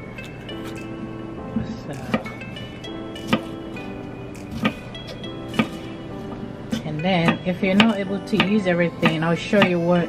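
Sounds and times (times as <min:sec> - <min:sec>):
background music with held notes: 0:00.0 - 0:10.0
knife slicing pepper: 0:03.2 - 0:09.8.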